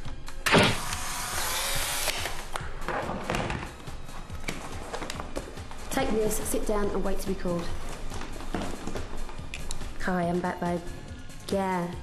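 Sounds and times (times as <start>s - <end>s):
camera motor whirring: 0.8s - 2.4s.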